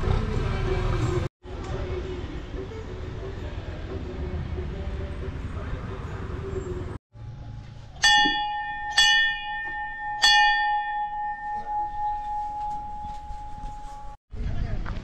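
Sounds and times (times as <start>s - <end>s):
outdoor background noise: 0.0s - 15.0s
temple bell ringing: 7.5s - 14.2s.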